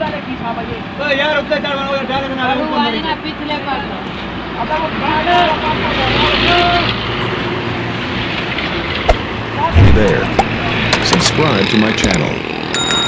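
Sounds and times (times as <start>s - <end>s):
heavy thud: 9.1s - 10.6s
men's voices: 9.4s - 12.4s.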